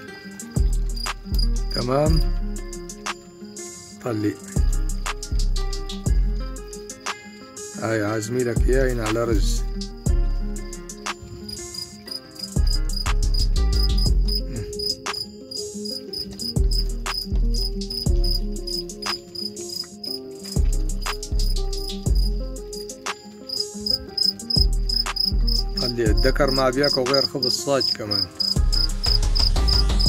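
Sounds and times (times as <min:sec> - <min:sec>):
music with deep bass: 0:00.4 - 0:03.3, 0:04.5 - 0:07.1, 0:08.6 - 0:11.8, 0:12.5 - 0:15.3, 0:16.4 - 0:19.6, 0:20.5 - 0:27.4, 0:28.5 - 0:30.0.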